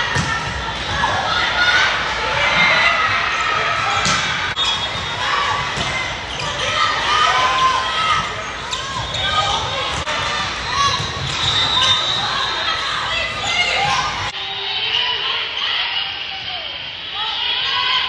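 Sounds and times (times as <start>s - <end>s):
crowd chatter: 0.0s - 18.0s
players' voices: 0.0s - 18.0s.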